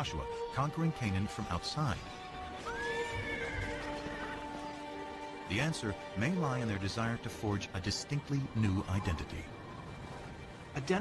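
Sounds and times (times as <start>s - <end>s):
background music with held notes: 0.0s - 11.0s
horse neighing: 2.6s - 4.8s.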